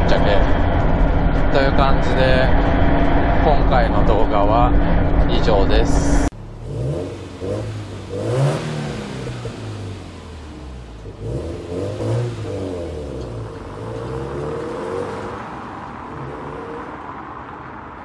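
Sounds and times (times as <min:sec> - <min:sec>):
car engine accelerating away: 0:06.3 - 0:17.8.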